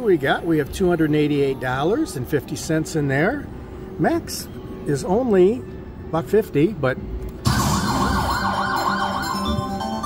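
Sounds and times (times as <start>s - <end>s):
slot machine reel-spin tones: 7.4s - 10.0s.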